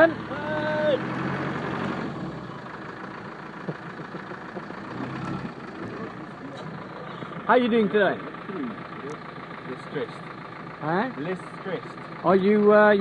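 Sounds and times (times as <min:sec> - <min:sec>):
engine idling: 0:00.0 - 0:13.0.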